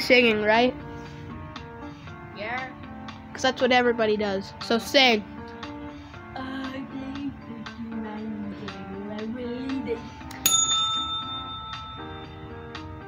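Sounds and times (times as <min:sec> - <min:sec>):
music with wavering melody: 0:05.3 - 0:13.0
desk call bell ding: 0:10.4 - 0:12.9.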